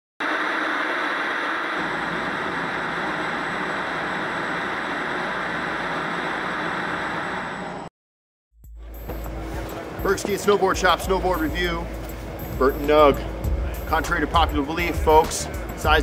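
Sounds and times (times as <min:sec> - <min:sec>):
low rumble: 0:00.6 - 0:07.9.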